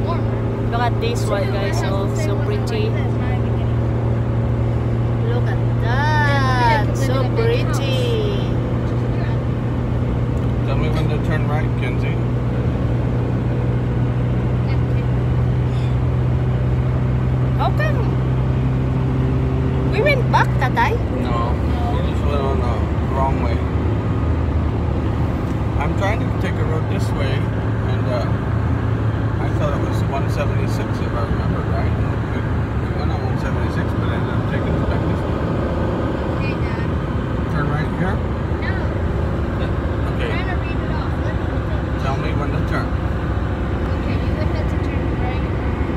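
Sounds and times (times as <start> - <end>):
engine and tyre drone: 0.0 - 45.9.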